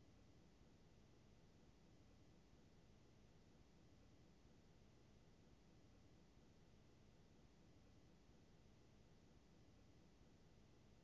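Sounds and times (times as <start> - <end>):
faint recording hiss: 0.0 - 11.0.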